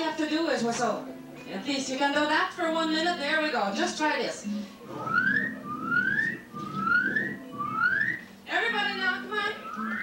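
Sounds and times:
rising whistled notes: 0:05.0 - 0:08.2, 0:09.6 - 0:10.0.

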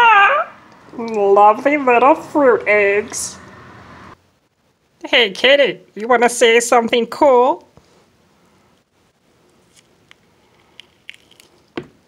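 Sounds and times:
fruit rind squished open by hand: 0:10.6 - 0:11.8.

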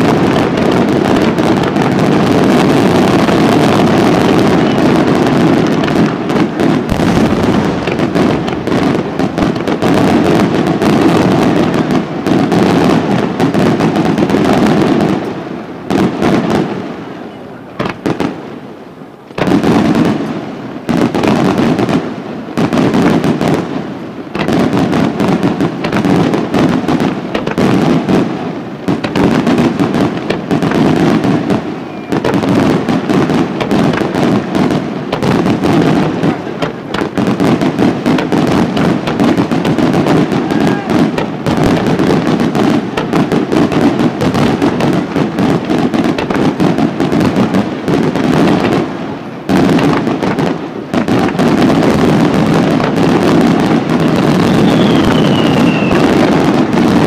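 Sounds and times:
fireworks bursting and crackling: 0:00.0 - 0:57.0.

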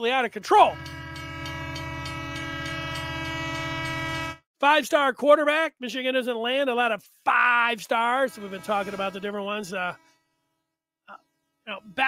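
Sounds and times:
train horn chord: 0:00.6 - 0:04.4, 0:08.3 - 0:10.2.

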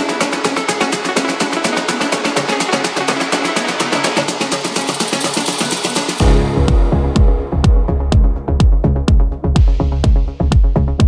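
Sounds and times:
plucked melodic riff: 0:06.2 - 0:09.5.

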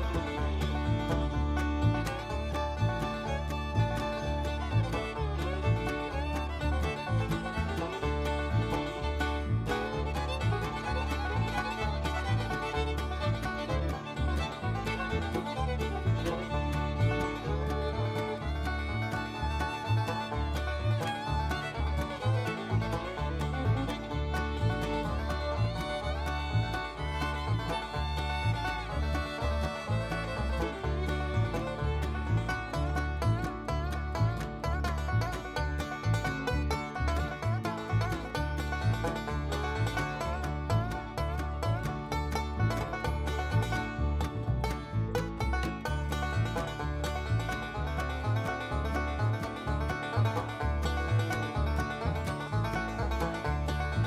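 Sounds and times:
bluegrass banjo: 0:00.0 - 0:54.0
fiddle: 0:00.0 - 0:54.0
steady bass rhythm: 0:00.0 - 0:54.0.

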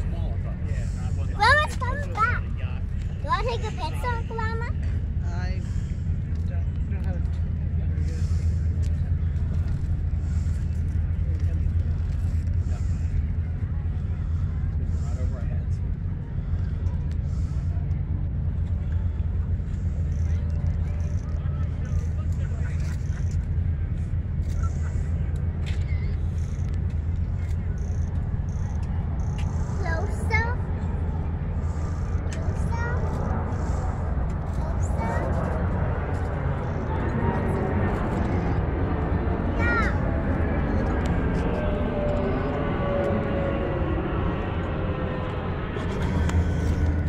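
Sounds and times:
jet airliner flying overhead: 0:00.0 - 0:47.0
low rumble: 0:00.0 - 0:47.0.

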